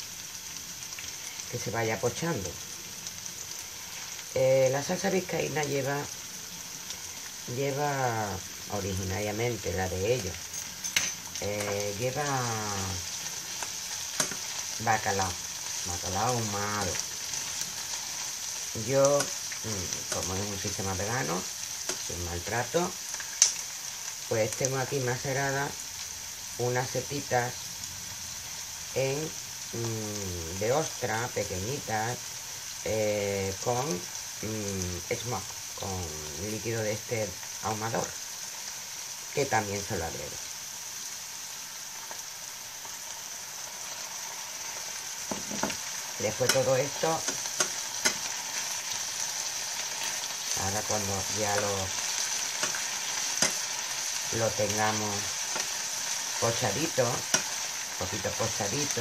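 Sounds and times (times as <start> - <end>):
onion sizzling in frying pan: 0.0 - 59.0
spoon stirring in pan: 13.0 - 20.8, 45.2 - 56.4, 57.0 - 58.0.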